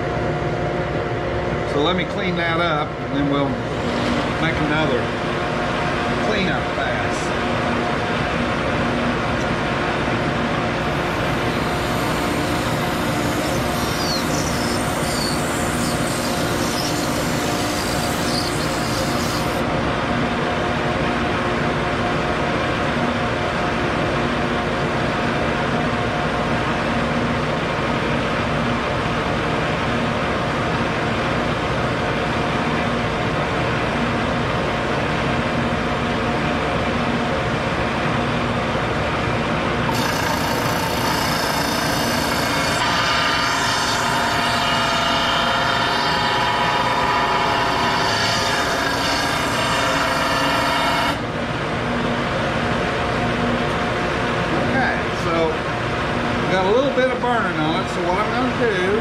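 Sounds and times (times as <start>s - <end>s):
sanding machine running: 10.7s - 19.7s, 39.9s - 51.2s
wood sanding against disc: 10.9s - 19.6s, 39.9s - 42.9s.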